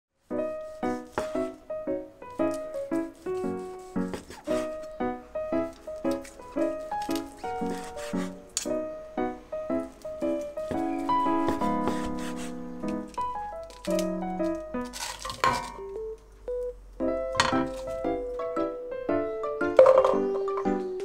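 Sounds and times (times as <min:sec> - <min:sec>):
light bouncy background music: 0:00.3 - 0:21.0.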